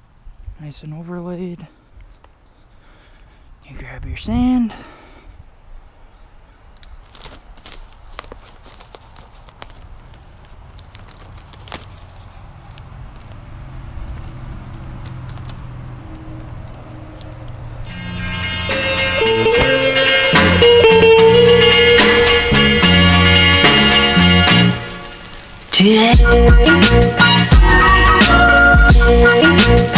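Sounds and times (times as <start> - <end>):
sand bag rustling and tearing: 7.0 - 13.4, 21.2 - 26.0
background music: 17.9 - 29.9.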